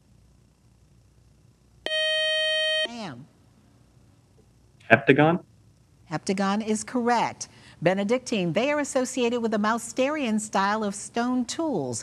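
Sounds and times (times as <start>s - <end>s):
quiz show buzzer tone: 1.9s - 3.0s.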